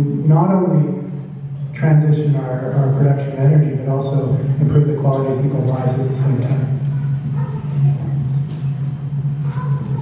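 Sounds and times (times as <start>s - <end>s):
steady low hum: 0.0s - 10.0s
faint indistinct voices: 1.4s - 10.0s.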